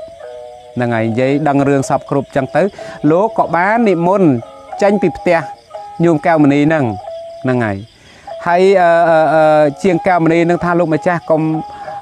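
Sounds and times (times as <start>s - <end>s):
crickets chirping: 0.0s - 12.0s
monk chanting: 0.8s - 12.0s.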